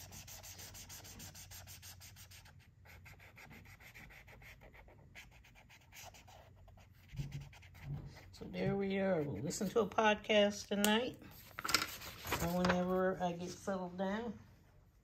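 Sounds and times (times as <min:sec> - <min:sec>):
marker scribbling on paper: 0:00.0 - 0:08.3.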